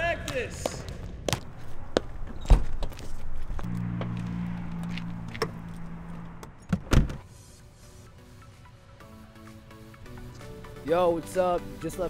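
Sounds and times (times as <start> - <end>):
car door shutting: 5.2 - 5.7, 6.4 - 7.3
car door thump: 6.7 - 7.2.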